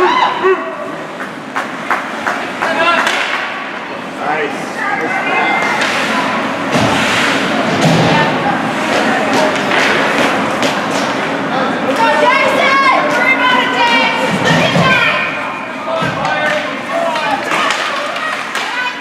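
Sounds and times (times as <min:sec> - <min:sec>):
people shouting and chattering: 0:00.0 - 0:19.0
hockey sticks and puck thudding: 0:01.2 - 0:03.6, 0:05.6 - 0:12.2, 0:16.0 - 0:19.0.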